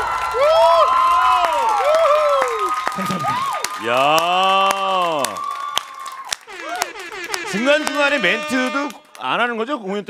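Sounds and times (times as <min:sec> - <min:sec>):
cheers: 0:00.0 - 0:08.1
hand claps: 0:02.4 - 0:09.4.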